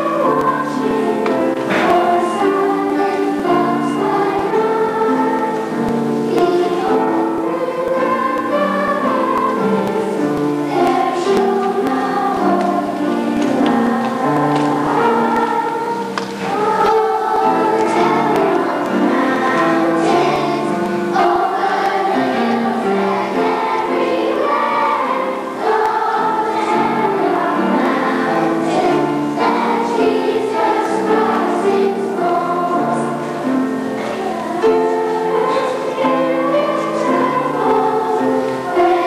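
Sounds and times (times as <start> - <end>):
children's choir singing: 0.0 - 39.0.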